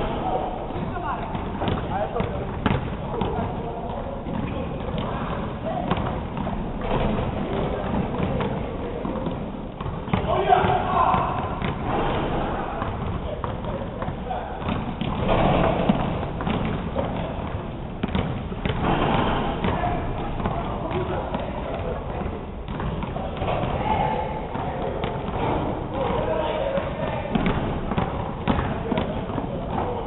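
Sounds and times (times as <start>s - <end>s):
basketball dribbled on hardwood floor: 0.8s - 23.8s, 26.8s - 30.0s.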